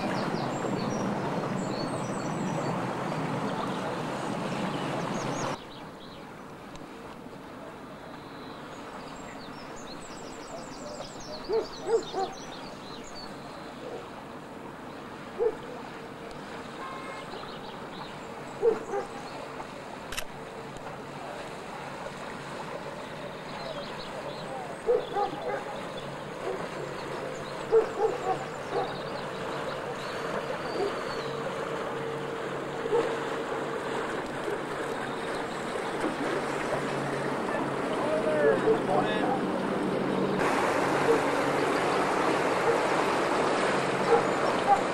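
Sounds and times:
ferry engine humming: 0.0 - 5.6, 6.3 - 44.9
water rushing along hull: 0.0 - 44.9
small birds chirping: 8.1 - 14.1, 22.9 - 31.5
bird hooting calls: 11.3 - 12.5, 23.6 - 33.4.

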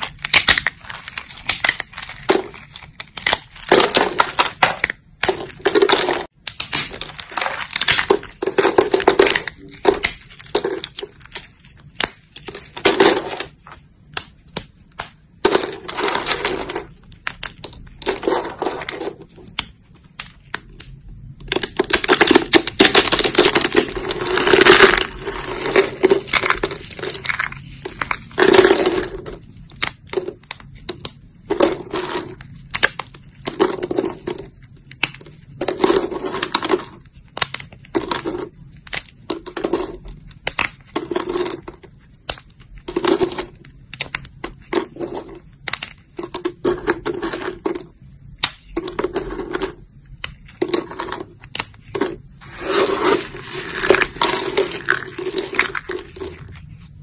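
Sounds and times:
dry soap cracking and crunching: 0.0 - 57.0.

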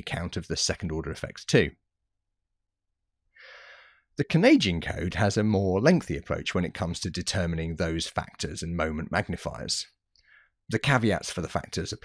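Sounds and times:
man's short in-breath: 3.4 - 4.1.

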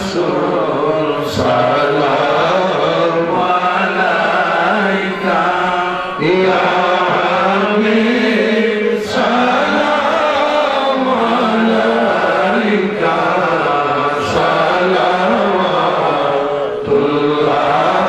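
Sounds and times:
man chanting: 0.0 - 18.0.

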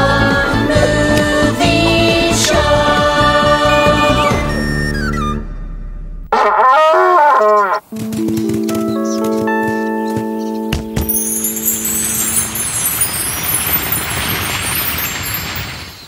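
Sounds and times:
cartoon elephant trumpeting: 6.3 - 7.8
ringing chime notes: 9.0 - 15.9
sparkling magic shimmer: 11.1 - 16.0.

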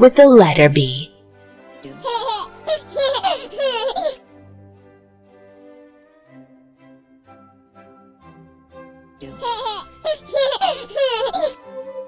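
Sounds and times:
background music: 0.0 - 12.0
child giggling: 2.0 - 4.2, 9.4 - 11.6.

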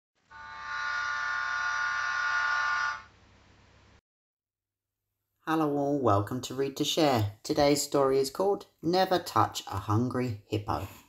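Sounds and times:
steam locomotive whistle: 0.3 - 3.1.

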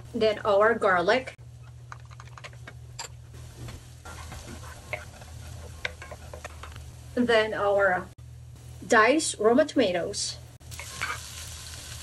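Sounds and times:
wooden spoon scraping a pan: 4.0 - 6.8
garlic sizzling in oil: 10.6 - 12.0.

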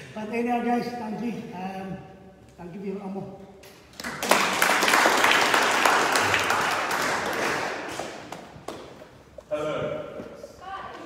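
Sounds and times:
small audience applauding: 3.9 - 8.8.

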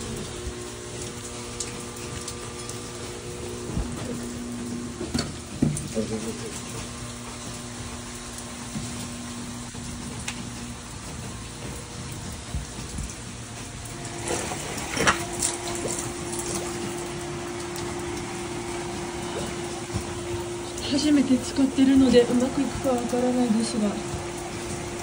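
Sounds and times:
pump humming: 0.0 - 25.0
rush of rain and water: 0.0 - 25.0.

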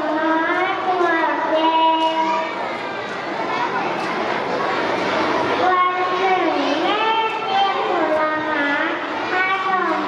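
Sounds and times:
child's sing-song voice: 0.0 - 2.6, 5.6 - 10.0
murmur of hall noise: 0.0 - 10.0.

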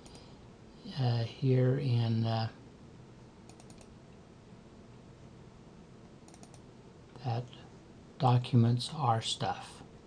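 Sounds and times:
computer mouse clicking: 0.0 - 0.3, 3.4 - 4.0, 6.2 - 6.7
faint room hiss: 0.0 - 10.0.

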